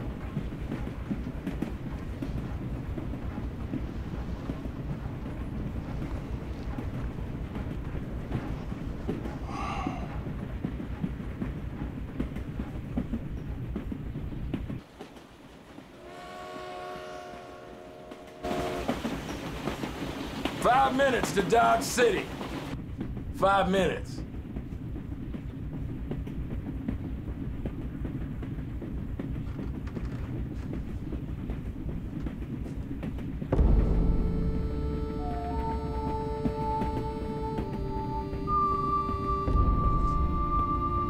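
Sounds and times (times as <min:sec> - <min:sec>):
steady train rumble: 0:00.0 - 0:41.0
train wheels clattering over rails: 0:00.0 - 0:41.0
steam locomotive whistle: 0:16.0 - 0:19.1, 0:34.0 - 0:41.0.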